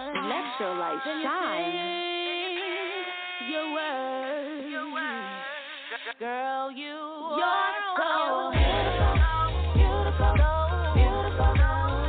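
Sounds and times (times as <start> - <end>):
woman singing unaccompanied: 0.0 - 11.8.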